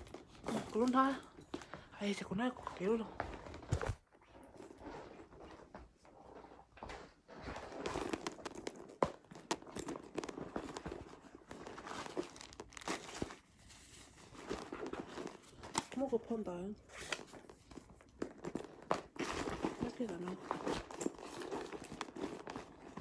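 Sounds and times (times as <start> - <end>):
rustling and crinkling: 0.0 - 23.0.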